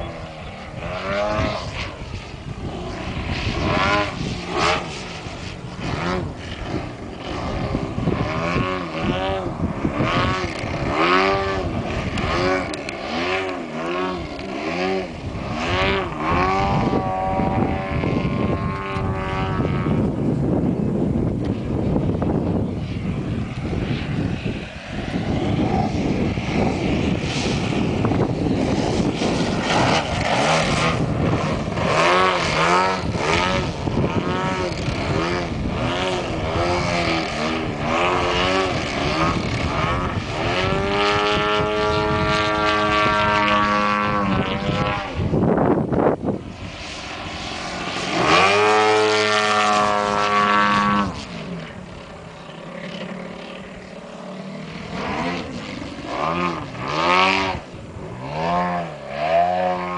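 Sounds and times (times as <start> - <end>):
model plane engine and propeller: 0.0 - 59.9.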